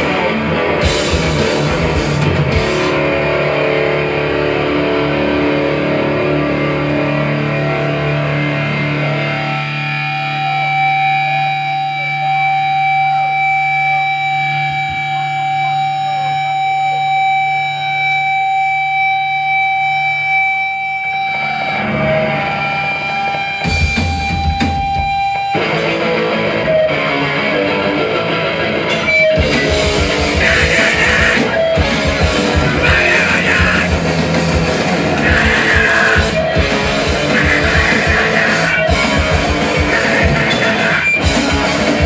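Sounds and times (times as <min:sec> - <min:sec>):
rock band playing loudly: 0:00.0 - 0:42.0
sustained electric guitar tones: 0:00.0 - 0:42.0.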